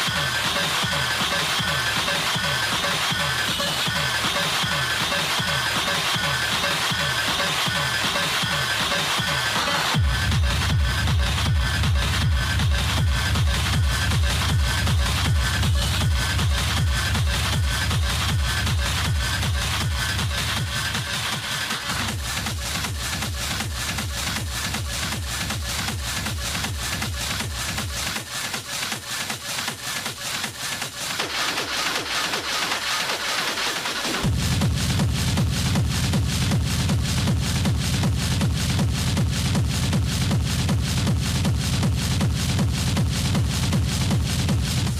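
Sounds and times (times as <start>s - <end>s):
hard techno music: 0.0s - 44.9s.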